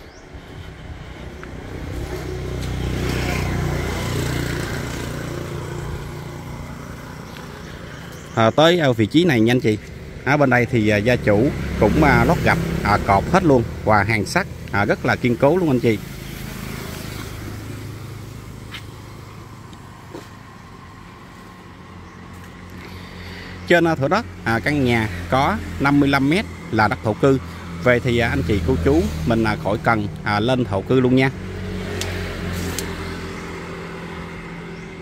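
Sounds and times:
vehicle passing: 0.0 - 35.0.

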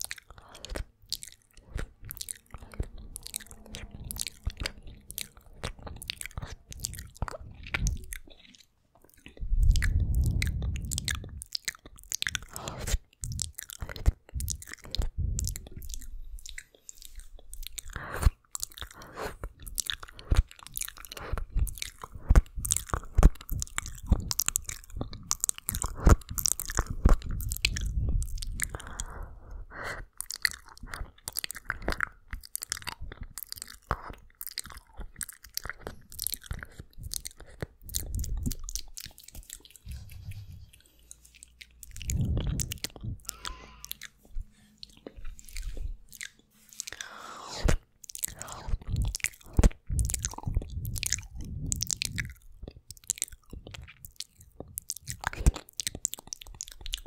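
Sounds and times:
wet mouth clicks and smacks: 0.0 - 57.0
low rumbling: 1.2 - 8.4, 9.3 - 11.4, 41.8 - 46.2.

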